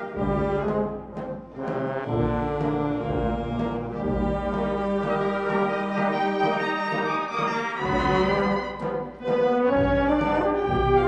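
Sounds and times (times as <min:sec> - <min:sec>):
band playing funeral march: 0:00.0 - 0:11.0.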